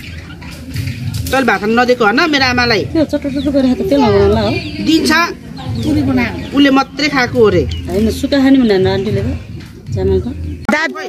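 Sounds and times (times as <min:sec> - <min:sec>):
hens clucking: 0:00.0 - 0:11.0
voices talking: 0:00.0 - 0:11.0.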